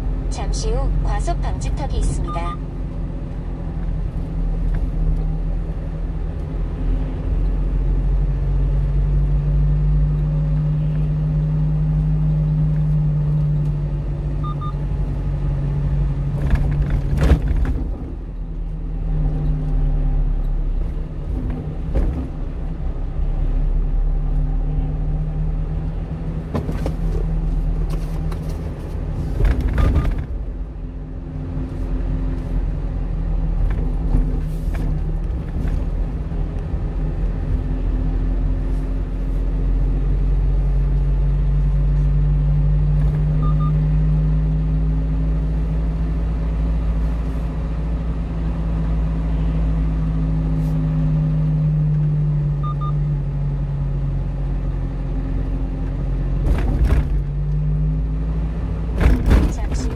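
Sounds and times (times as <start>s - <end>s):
low road rumble: 0.0s - 59.9s
truck diesel engine running: 17.8s - 56.4s
knocks and rattles: 58.9s - 59.9s.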